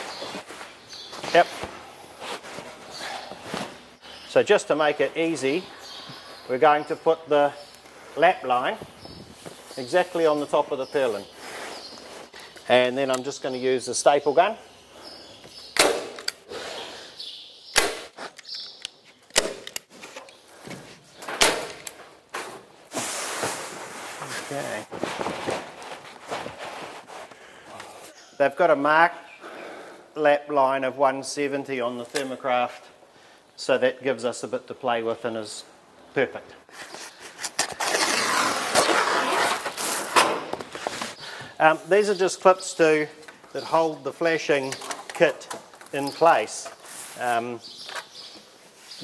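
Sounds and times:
membrane rustling: 0.0s - 4.0s, 18.0s - 28.1s, 36.7s - 41.2s
roofing underlay rustling and crinkling: 0.0s - 16.4s, 18.1s - 29.2s, 30.2s - 49.0s.

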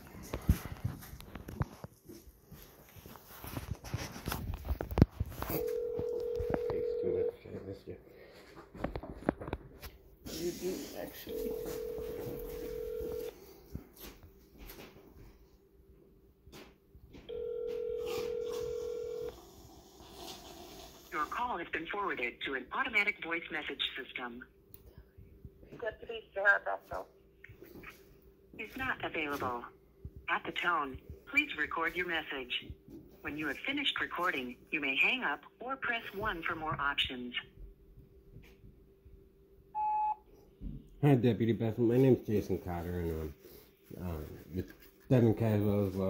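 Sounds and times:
telephone ringback tone: 5.5s - 7.4s, 11.3s - 13.4s, 17.3s - 19.4s, 39.8s - 40.2s
short voicemail beep: 39.8s - 40.2s.

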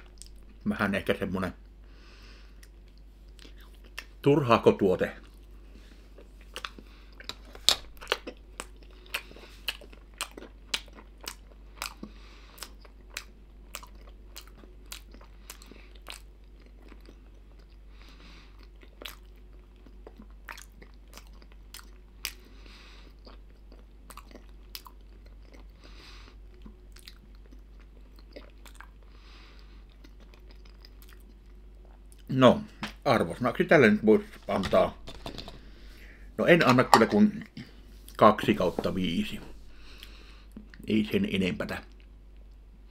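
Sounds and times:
mouth chewing with wet smacks: 2.6s - 4.2s, 6.1s - 32.3s.

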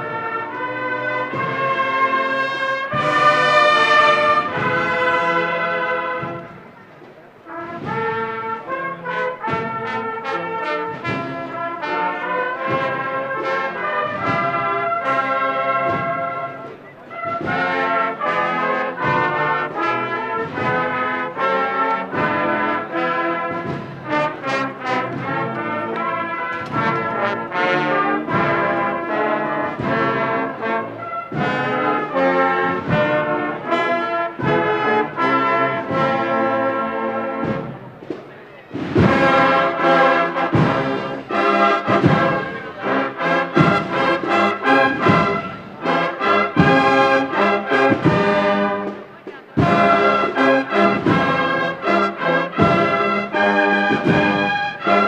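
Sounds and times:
brass band playing march: 0.0s - 55.0s.

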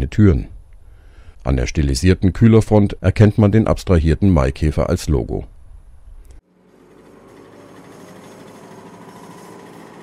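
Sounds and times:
small two-stroke engine running: 6.5s - 10.0s.

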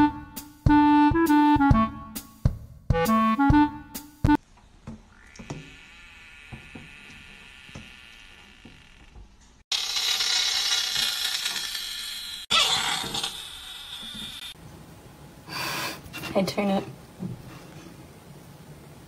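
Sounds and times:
frog screaming: 5.1s - 9.0s, 12.5s - 14.5s.

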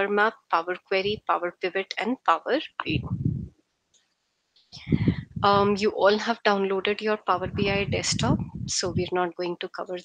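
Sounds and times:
low rumble: 2.9s - 3.5s, 4.8s - 6.0s, 7.3s - 9.1s
breath noise: 4.7s - 5.5s.

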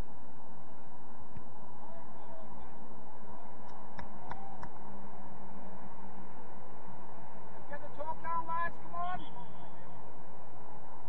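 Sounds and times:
faint player call: 0.0s - 11.0s
outdoor background noise: 0.0s - 11.0s.

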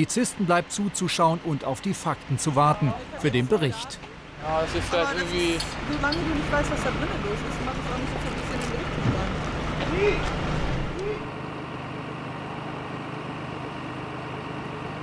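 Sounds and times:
voices: 0.0s - 11.3s
fire engines idling: 0.0s - 15.0s.

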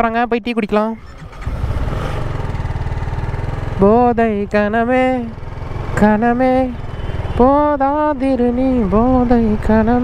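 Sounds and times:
motorcycle engine running: 0.9s - 10.0s.

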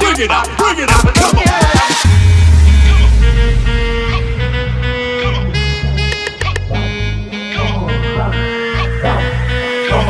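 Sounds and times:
electronic dance music: 0.1s - 5.4s.

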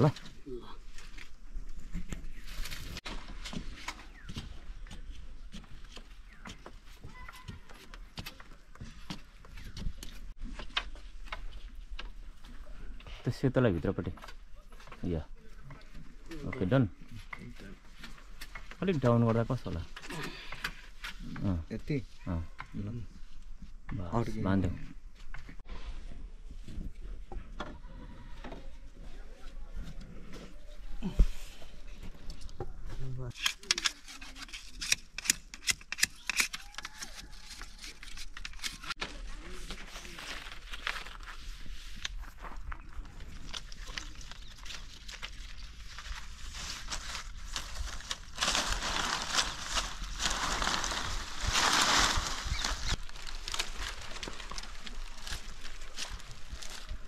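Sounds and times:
fronds rustling and swishing: 0.0s - 5.5s, 36.7s - 57.0s.

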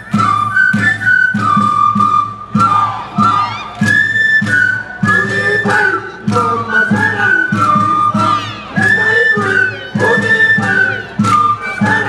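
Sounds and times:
drum beating: 0.0s - 12.0s
flute melody: 0.0s - 12.0s.

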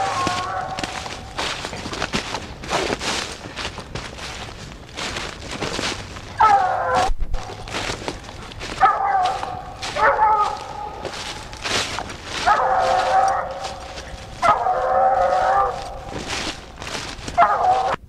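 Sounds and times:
dog baying: 0.0s - 3.0s, 6.3s - 18.0s.

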